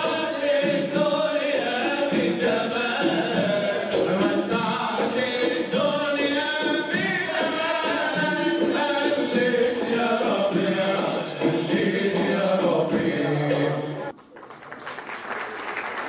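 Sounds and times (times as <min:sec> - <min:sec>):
male vocal group singing: 0:00.0 - 0:14.1
audience applause: 0:14.1 - 0:16.0.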